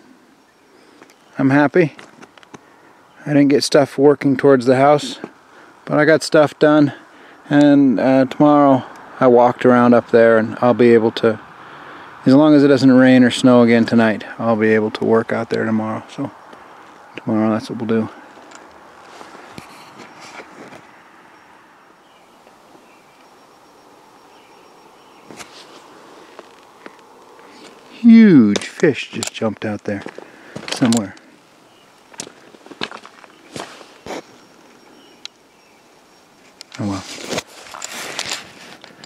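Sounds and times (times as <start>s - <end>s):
footsteps crunching on broken rock: 18.2s - 20.9s, 28.5s - 31.2s, 32.0s - 34.4s
camera handling rustle: 18.3s - 20.9s, 25.3s - 27.8s, 36.4s - 39.0s.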